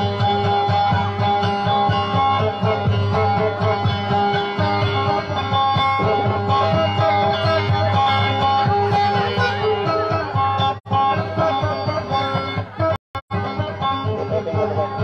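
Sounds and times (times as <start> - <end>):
acoustic guitar playing: 0.0 - 15.0.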